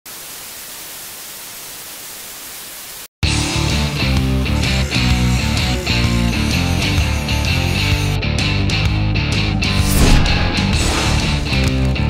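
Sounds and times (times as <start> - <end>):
tv static hiss: 0.1 - 3.1
loud guitar music: 3.2 - 12.0.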